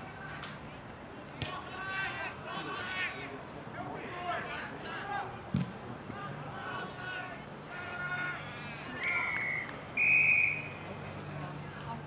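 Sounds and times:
whistle blasts: 0:09.0 - 0:10.8.

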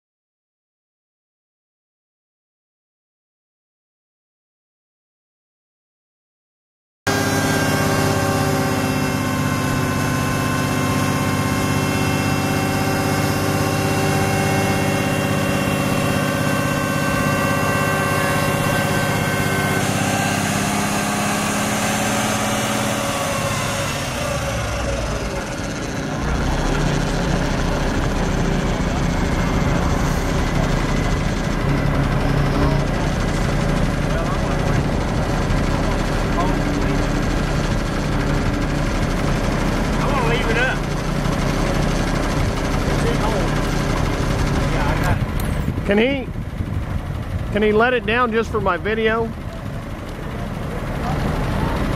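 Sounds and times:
hydraulic hoist: 0:07.1 - 0:45.8
truck diesel engine revving: 0:07.1 - 0:51.9.

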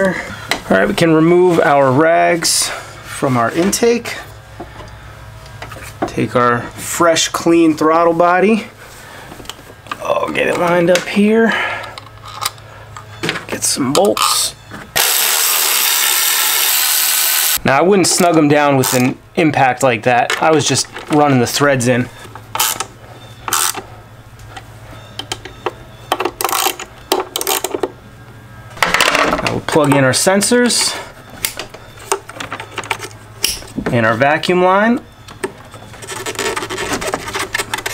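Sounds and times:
electric ratchet whirring: 0:15.0 - 0:17.6, 0:22.6 - 0:22.9, 0:23.5 - 0:23.8.

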